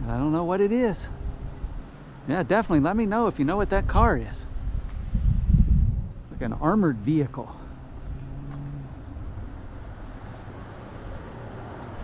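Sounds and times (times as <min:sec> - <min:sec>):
car engine hum: 0:00.0 - 0:12.0
low road rumble: 0:00.0 - 0:12.0.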